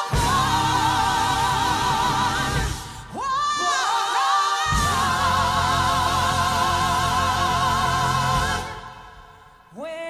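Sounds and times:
gospel choir singing: 0.0 - 10.0.

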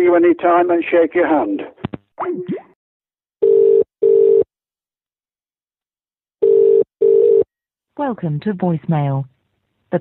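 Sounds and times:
telephone ringing tone: 3.4 - 4.5, 6.4 - 7.5.

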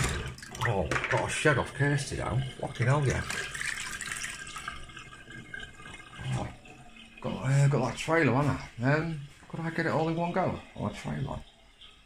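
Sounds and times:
water splashing in a sink: 0.0 - 12.0.

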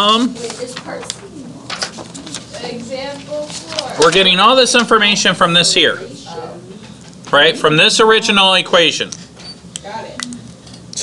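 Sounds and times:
murmuring voices: 0.0 - 8.2.

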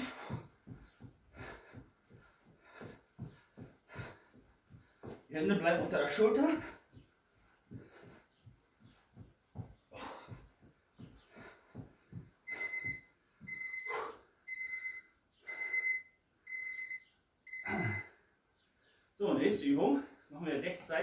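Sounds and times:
feet and knees thudding on floor: 0.0 - 14.1
electronic timer beeps: 12.5 - 18.1.

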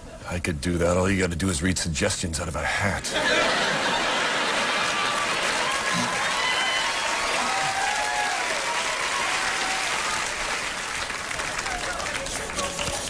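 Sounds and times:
audience applauding: 3.2 - 13.0.

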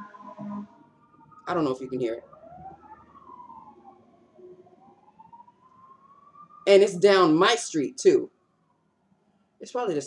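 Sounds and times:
faint siren wailing: 0.0 - 10.0.

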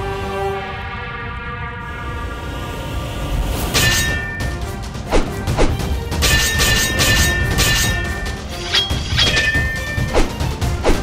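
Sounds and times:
dramatic background music: 0.0 - 11.0
metal swords clashing: 3.8 - 4.6, 5.2 - 11.0.

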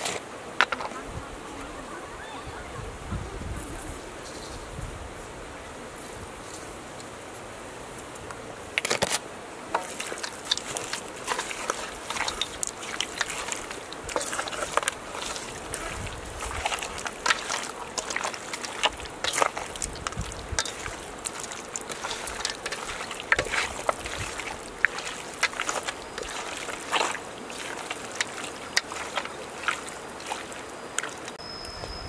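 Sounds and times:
wet squelches of meat: 9.8 - 31.4.

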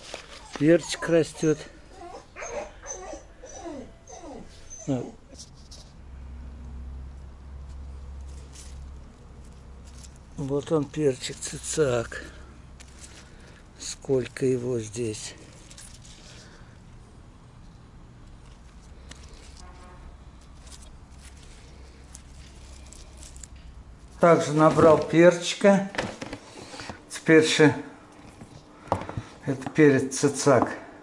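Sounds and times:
leaves rustling: 0.0 - 2.0, 5.3 - 25.4.

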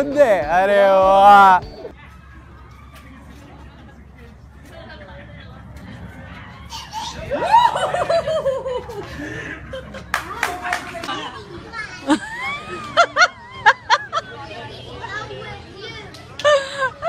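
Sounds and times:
people exclaiming: 6.3 - 15.3
people laughing: 6.7 - 15.0, 16.3 - 17.0.

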